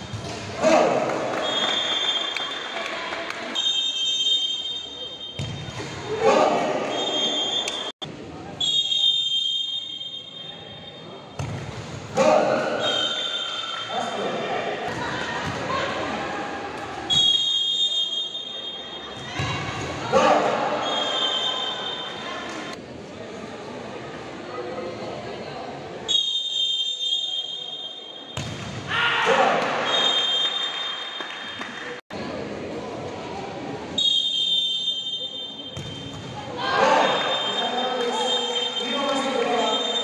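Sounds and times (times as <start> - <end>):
whistle blasts: 1.4 - 2.8, 3.5 - 5.7, 6.8 - 7.9, 8.6 - 11.0, 12.8 - 14.0, 17.1 - 19.2, 20.8 - 22.2, 26.1 - 28.4, 29.8 - 31.3, 34.0 - 36.2, 37.0 - 40.0
crowd shouting: 36.5 - 37.6.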